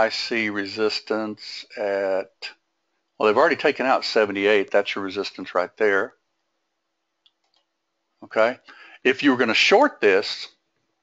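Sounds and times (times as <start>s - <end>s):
faint steady hum: 0.0s - 11.0s
computer mouse clicks: 7.2s - 7.7s.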